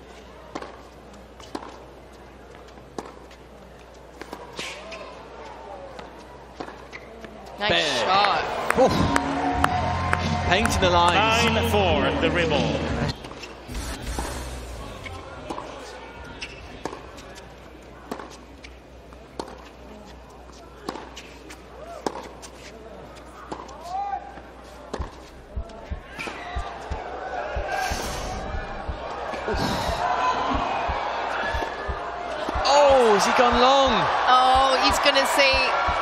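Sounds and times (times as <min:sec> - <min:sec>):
murmur of crowd voices: 0:00.0 - 0:36.0
racquets striking tennis ball: 0:15.0 - 0:18.8, 0:19.4 - 0:19.7, 0:20.8 - 0:21.3, 0:24.9 - 0:28.1, 0:28.8 - 0:36.0
ball bouncing on hard court: 0:29.8 - 0:36.0.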